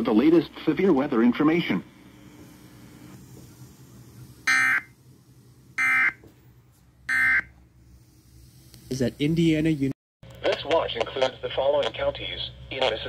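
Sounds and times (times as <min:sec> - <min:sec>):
buzzy digital tones from radio: 0:00.0 - 0:05.0, 0:08.6 - 0:13.0.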